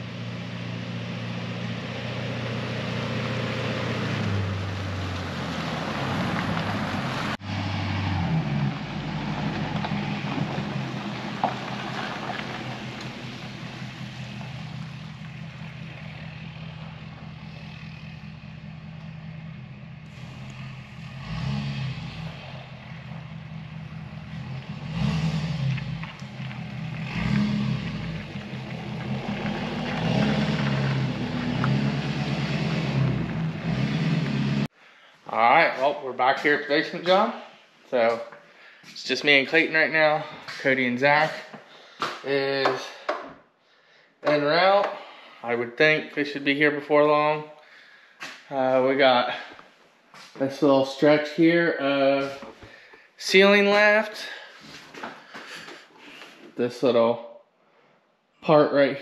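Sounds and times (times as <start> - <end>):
truck engine running: 0.0 - 34.7
tyre noise on wet pavement: 1.0 - 34.7, 54.3 - 56.5.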